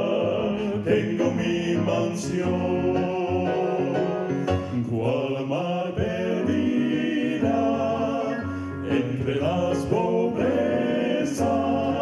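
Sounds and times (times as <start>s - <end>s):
male quartet singing in harmony: 0.0s - 12.0s.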